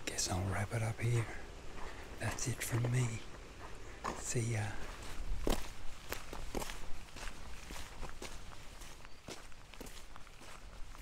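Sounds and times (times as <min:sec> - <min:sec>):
footsteps on sandy dirt: 0:00.0 - 0:11.0.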